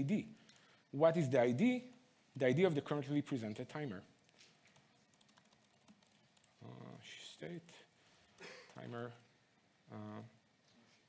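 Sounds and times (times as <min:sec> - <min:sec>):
laptop keyboard typing: 0:04.4 - 0:06.6.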